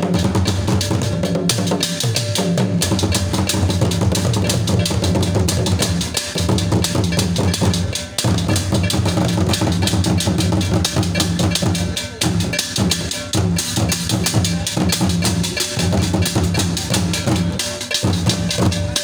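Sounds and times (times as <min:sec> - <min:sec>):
drum ensemble playing: 0:00.0 - 0:19.0
talking drums beaten with sticks: 0:00.0 - 0:19.0.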